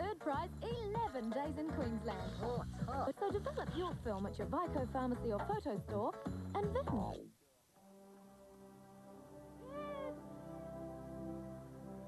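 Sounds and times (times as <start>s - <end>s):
slow music of held notes: 7.8s - 12.0s
cat meowing: 9.6s - 10.3s.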